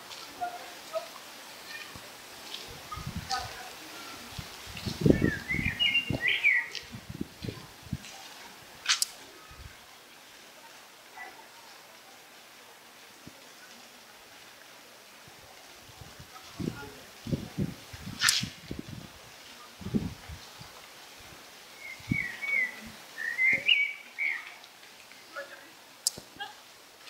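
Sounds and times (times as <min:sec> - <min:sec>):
songbird warbling: 0:05.2 - 0:06.8, 0:21.8 - 0:24.6
short hiss: 0:18.1 - 0:18.8.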